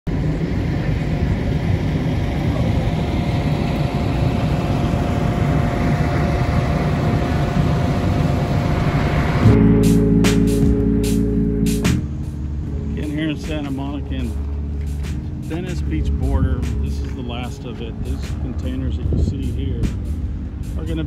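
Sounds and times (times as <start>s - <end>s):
faint steady whine: 0.1s - 16.1s
heavy engine rumble: 0.1s - 21.0s
music with percussive hits: 9.5s - 12.4s.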